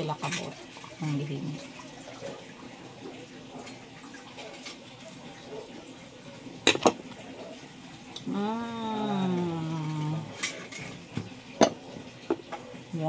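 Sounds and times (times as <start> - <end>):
tap water running: 0.0 - 13.0.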